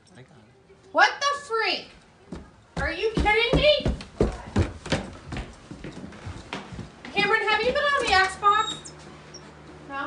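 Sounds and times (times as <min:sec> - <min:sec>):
footsteps on hardwood floor: 0:02.3 - 0:08.4.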